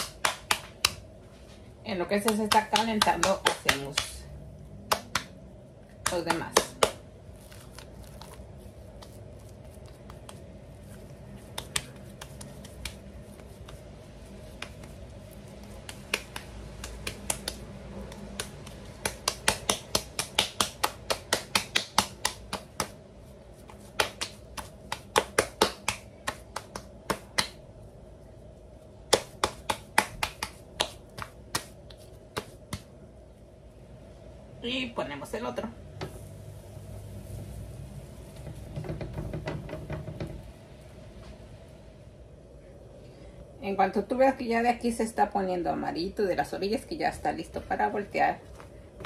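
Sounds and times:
hands slapping dough: 0.0s - 27.9s, 28.5s - 33.1s.

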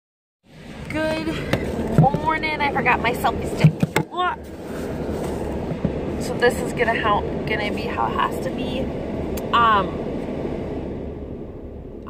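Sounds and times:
car cabin road and engine hum: 0.5s - 12.0s.

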